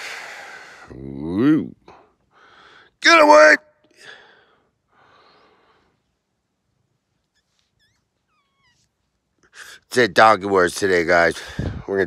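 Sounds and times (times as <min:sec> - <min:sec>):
soft breathy huffs: 0:04.0 - 0:06.2
cat mewing: 0:07.7 - 0:09.0.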